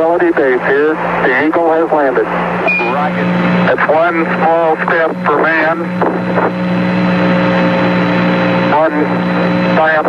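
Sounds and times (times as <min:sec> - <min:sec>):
radio transmission hiss and hum: 0:00.0 - 0:10.0.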